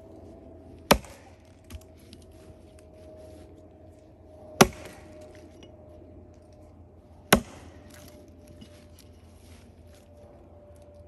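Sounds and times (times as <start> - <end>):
axe chopping into log: 0.9 - 1.8, 4.6 - 5.2, 7.3 - 8.1.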